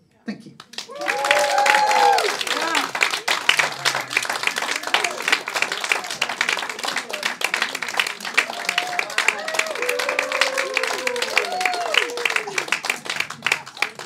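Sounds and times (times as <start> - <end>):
audience applauding: 0.6 - 14.0
voices cheering: 0.8 - 14.0.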